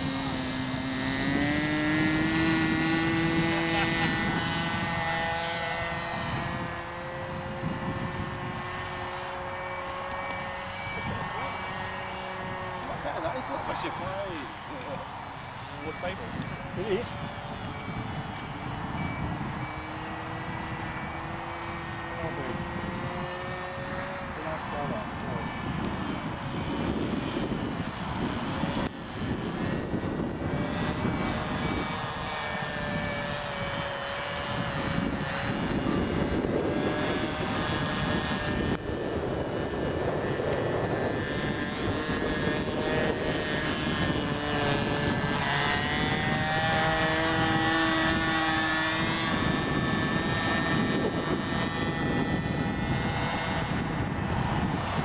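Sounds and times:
model aircraft motor drone: 0.0s - 55.0s
wind buffeting microphone: 0.0s - 55.0s.

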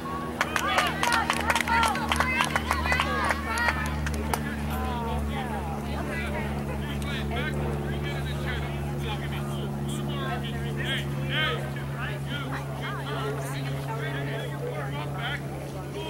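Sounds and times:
low mechanical hum: 0.0s - 16.0s.

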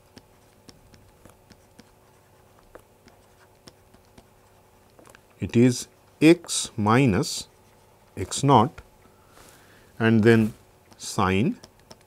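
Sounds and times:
stylus clicking and scratching on screen: 0.0s - 9.1s, 10.0s - 12.0s.

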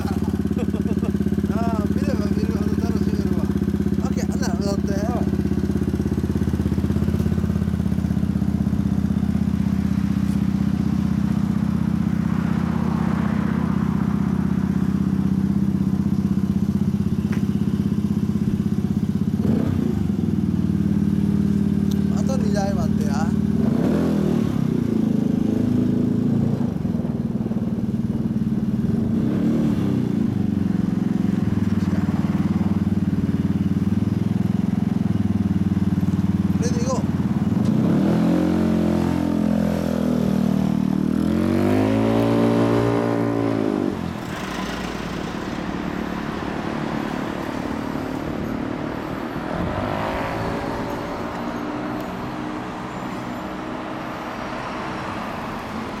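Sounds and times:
scooter engine idling: 0.0s - 23.6s, 24.3s - 29.2s, 29.9s - 41.6s, 43.1s - 54.0s.

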